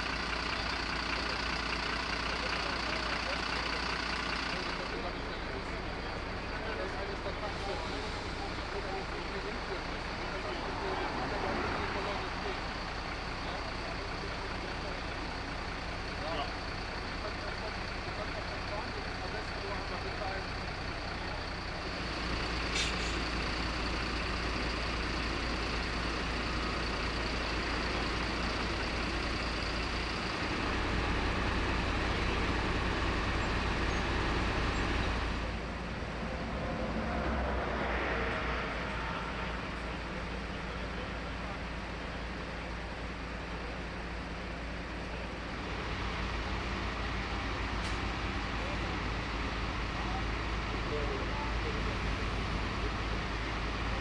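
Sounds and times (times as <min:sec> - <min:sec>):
heavy truck engines idling: 0:00.0 - 0:54.0
people talking in background: 0:00.2 - 0:54.0.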